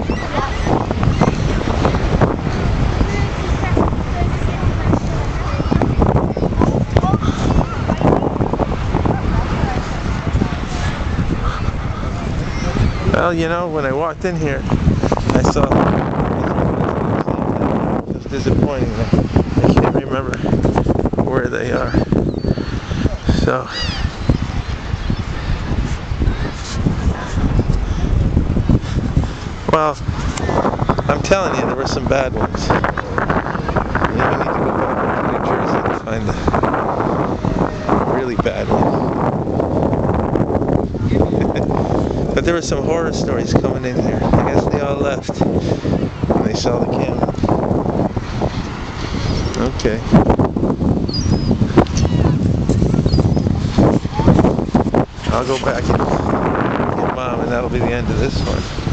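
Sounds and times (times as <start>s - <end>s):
wind buffeting microphone: 0.0s - 58.9s.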